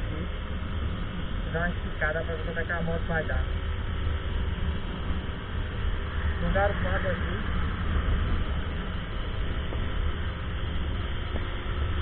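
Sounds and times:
road noise: 0:00.0 - 0:12.0
motorcycle engine at full throttle: 0:03.3 - 0:12.0
wind buffeting microphone: 0:03.5 - 0:12.0.

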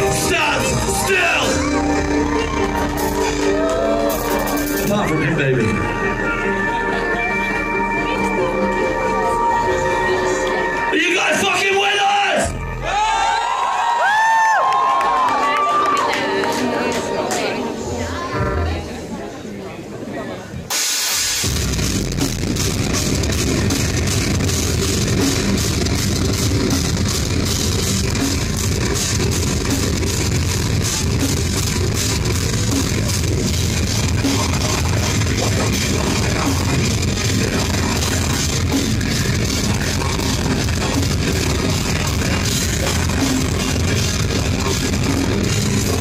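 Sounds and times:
heavy rock band playing: 0:00.0 - 0:13.4, 0:20.7 - 0:46.0.

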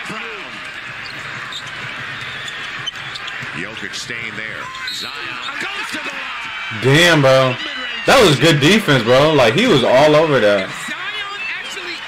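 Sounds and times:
crowd roar: 0:00.0 - 0:12.0
basketball dribbling on court: 0:00.7 - 0:04.6.

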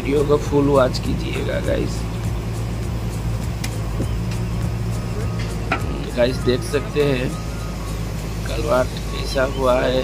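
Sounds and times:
excavator diesel engine running: 0:00.0 - 0:10.0.

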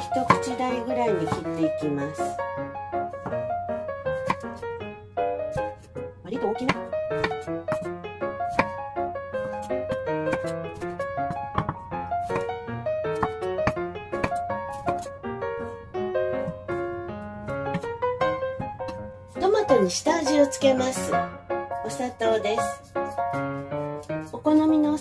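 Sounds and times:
piano melody: 0:00.0 - 0:25.0.

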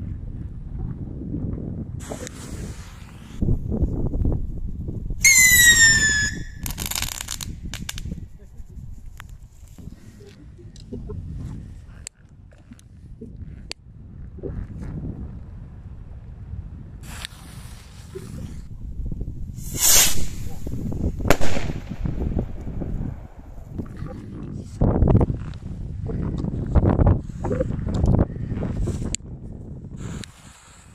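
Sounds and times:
wind rumble on microphone: 0:00.0 - 0:30.9
firework rocket whistling: 0:02.0 - 0:03.4, 0:05.2 - 0:08.0, 0:19.6 - 0:21.9
small crackling bursts: 0:06.1 - 0:11.2
firework bang: 0:21.2 - 0:23.5.

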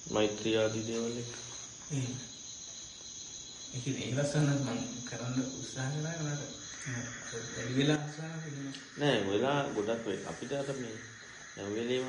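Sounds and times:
steady high-pitched tone: 0:00.0 - 0:12.0.

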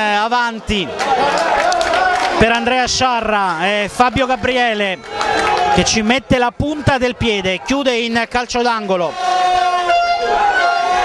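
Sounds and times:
horn long blast: 0:09.0 - 0:11.0.

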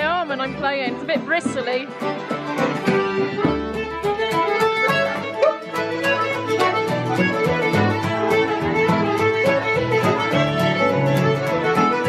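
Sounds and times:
fiddle melody: 0:00.0 - 0:12.0
keyboard chords: 0:00.0 - 0:12.0.

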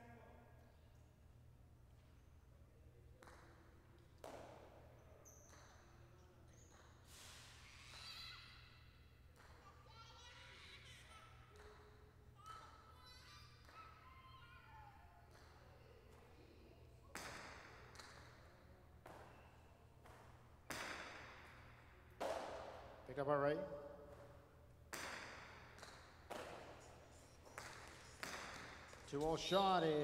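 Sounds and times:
ball cracking against wall: 0:20.0 - 0:22.9, 0:24.9 - 0:26.8, 0:27.5 - 0:29.2.

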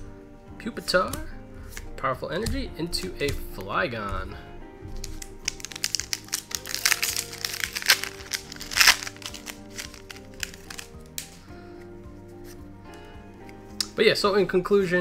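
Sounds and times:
background music: 0:00.0 - 0:15.0
foil wrapper crinkling: 0:04.9 - 0:11.4.

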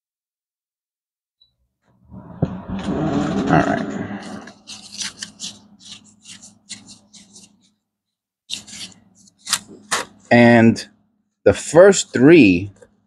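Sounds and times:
paper wrapper crinkling and tearing: 0:04.4 - 0:07.7, 0:08.5 - 0:10.2.

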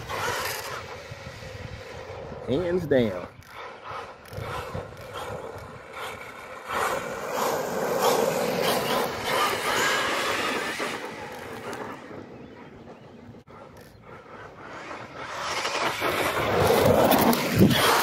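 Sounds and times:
tyre noise on asphalt: 0:03.3 - 0:18.0.

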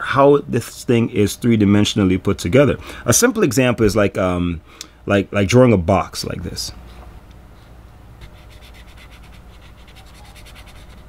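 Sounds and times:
pen scratching on paper: 0:08.2 - 0:11.0.

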